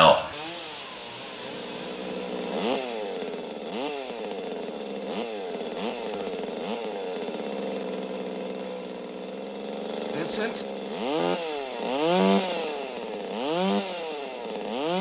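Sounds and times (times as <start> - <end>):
chainsaw engine revving: 0.0 - 15.0.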